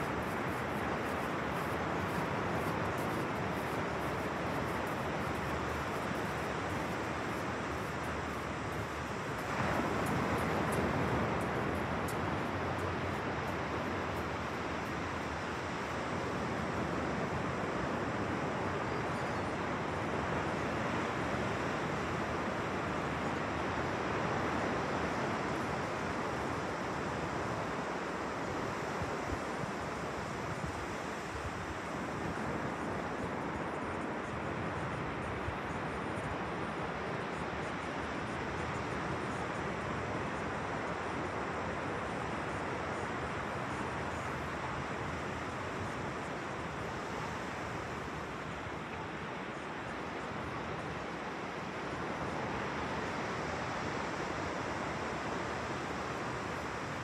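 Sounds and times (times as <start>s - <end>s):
ocean surf washing onto beach: 0.0s - 18.5s.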